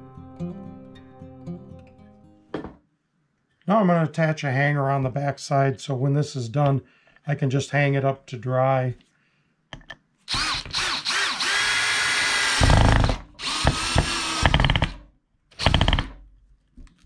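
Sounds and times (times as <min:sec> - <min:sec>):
cordless drill whining: 0:10.3 - 0:15.0, 0:15.6 - 0:16.2.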